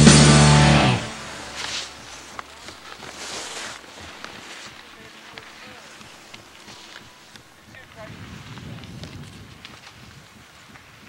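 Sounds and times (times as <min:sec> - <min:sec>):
skis swishing through snow: 0:01.0 - 0:11.0.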